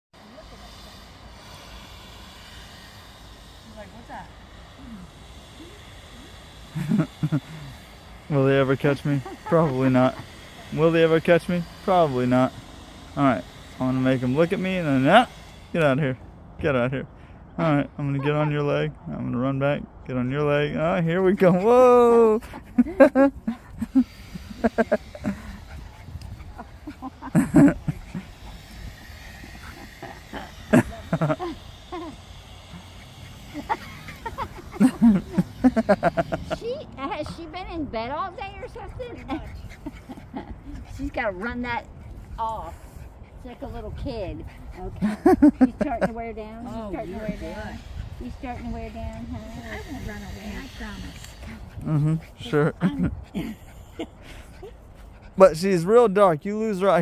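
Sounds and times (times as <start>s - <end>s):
small dog playing: 21.3s - 55.4s
wind rumble on microphone: 24.4s - 29.9s, 37.5s - 46.5s, 47.1s - 53.6s.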